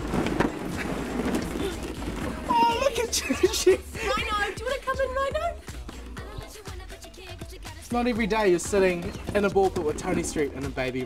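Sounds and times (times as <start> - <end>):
plastic balls rattling: 0.0 - 4.5, 7.9 - 11.0.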